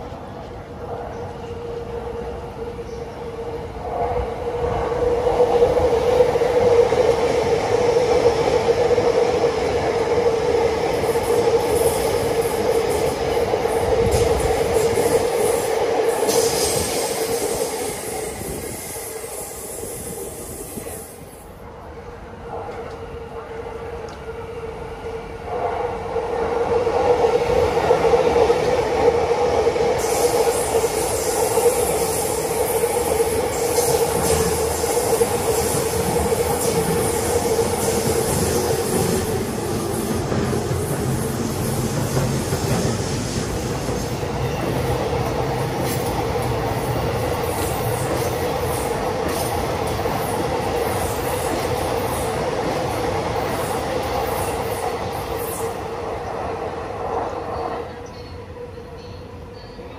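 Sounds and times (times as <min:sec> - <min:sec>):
train passing through station: 0:00.0 - 0:59.9
wheel and rail noise: 0:00.0 - 0:59.9.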